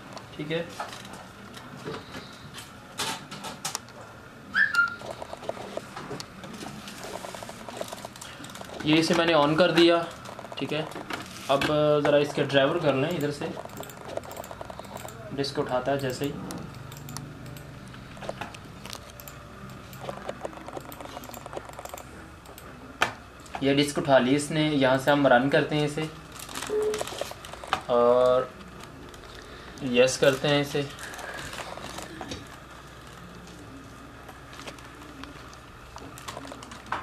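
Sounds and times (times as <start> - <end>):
printer clicking and whirring: 5.0 - 24.0
small mechanism ticking rapidly: 13.0 - 15.2.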